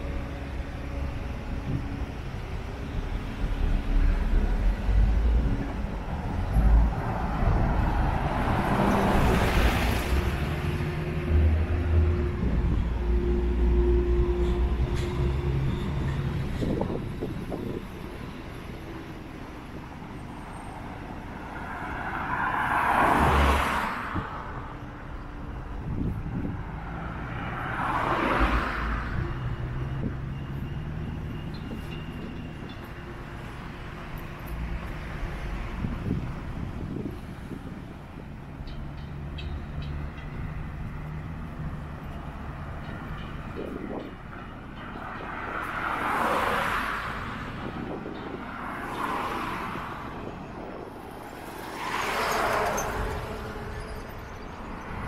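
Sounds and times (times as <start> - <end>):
cars driving past: 2.8 - 17.8, 20.4 - 55.0.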